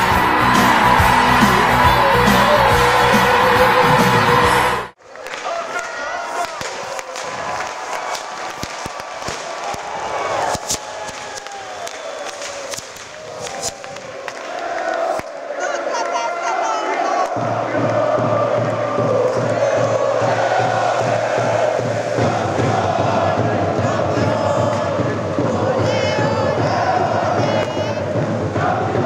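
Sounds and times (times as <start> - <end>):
intro music: 0.0 - 5.0
stadium crowd cheering and singing: 0.0 - 29.0.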